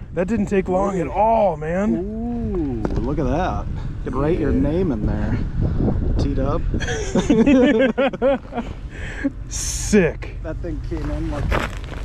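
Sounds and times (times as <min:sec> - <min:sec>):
steady low rumble: 0:00.0 - 0:12.0
man laughing: 0:06.8 - 0:09.4.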